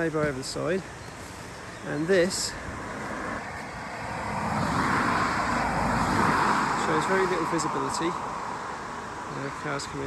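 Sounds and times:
car passing on wet road: 2.3s - 10.0s.

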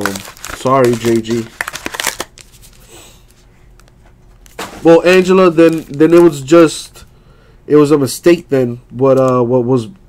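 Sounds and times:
foil packs crinkling: 0.0s - 6.6s.

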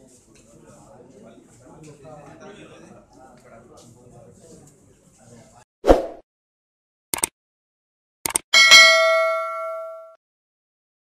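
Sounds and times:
notification bell ding: 8.6s - 10.2s.

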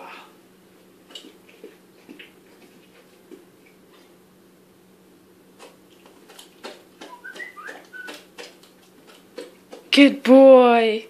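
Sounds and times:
dog chewing with wet smacks: 1.0s - 4.2s, 5.6s - 10.0s.

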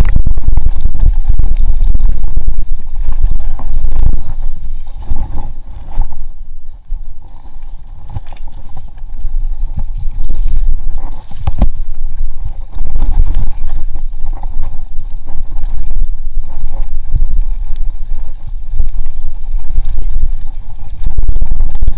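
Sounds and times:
mountain bike rumbling and rattling: 0.0s - 21.9s
wind buffeting microphone: 0.0s - 21.9s.

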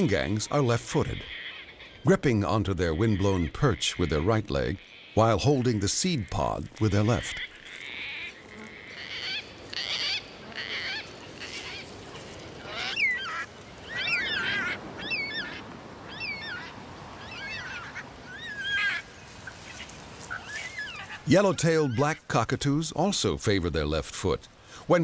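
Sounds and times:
cockatoos calling: 6.3s - 22.2s.

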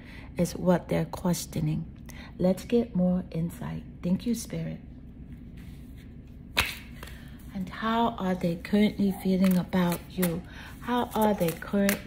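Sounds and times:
sharp snap: 6.6s - 7.0s.

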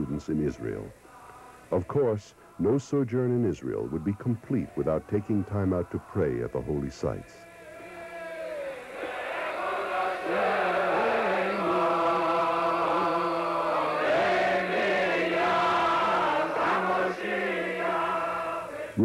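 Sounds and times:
slow chanted singing: 0.0s - 19.0s.

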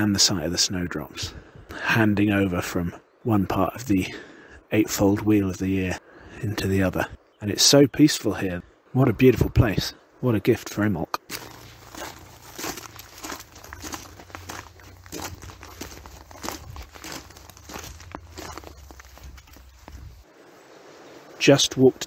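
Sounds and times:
crackling rustles: 11.2s - 21.4s
footsteps crunching through leaves: 11.3s - 20.3s.

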